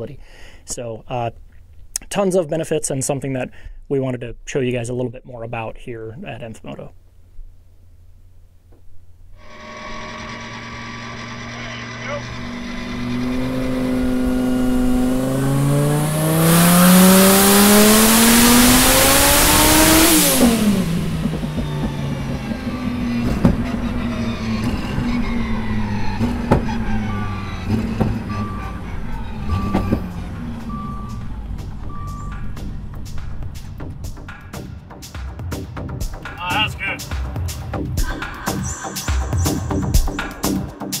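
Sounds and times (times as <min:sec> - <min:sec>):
exhaust cracks: 0:06.8 - 0:36.4
car engine revving at full throttle: 0:09.4 - 0:34.9
short beeps: 0:29.4 - 0:32.5.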